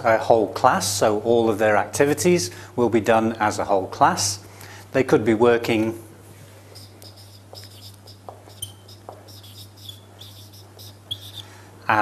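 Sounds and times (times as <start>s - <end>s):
steady low hum: 3.6s - 12.0s
marker squeaking on whiteboard: 6.7s - 11.5s.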